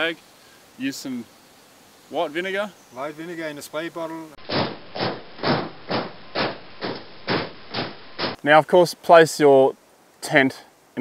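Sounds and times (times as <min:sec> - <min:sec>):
noisy percussive hits: 0:04.4 - 0:08.4.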